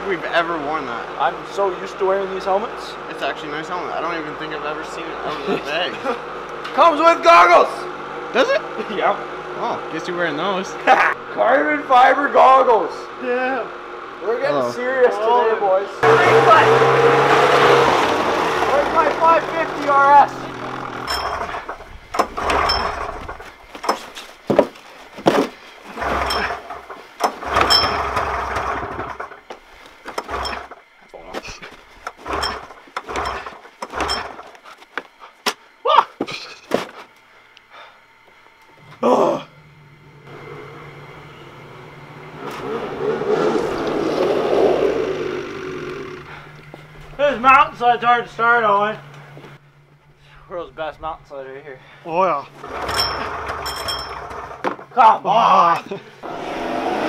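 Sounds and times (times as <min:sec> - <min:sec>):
snowmobile engine idling: 0:14.2 - 0:23.6, 0:39.6 - 0:50.4
scuffs and knocks: 0:23.4 - 0:25.8.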